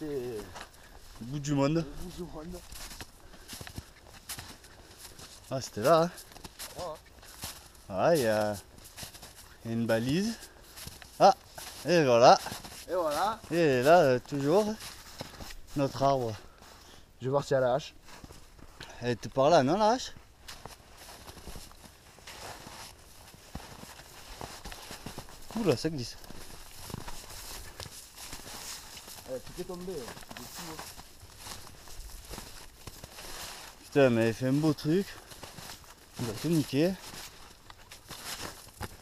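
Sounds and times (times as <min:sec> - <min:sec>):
footsteps on snow and forest floor: 0:00.0 - 0:39.0.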